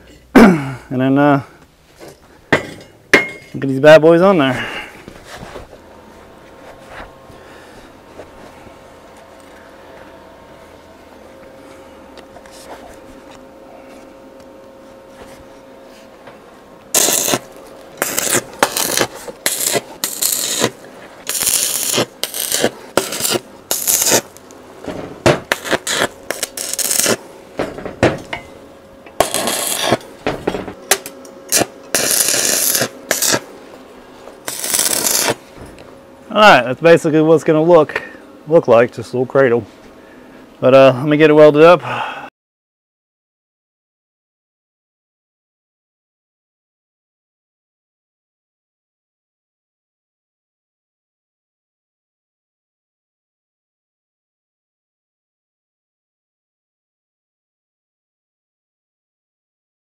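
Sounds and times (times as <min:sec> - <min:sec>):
faint steady hum: 0:00.0 - 0:42.3
welding arc crackling bursts: 0:16.9 - 0:24.5, 0:25.3 - 0:27.3, 0:29.2 - 0:30.1, 0:30.8 - 0:33.5, 0:34.4 - 0:35.5.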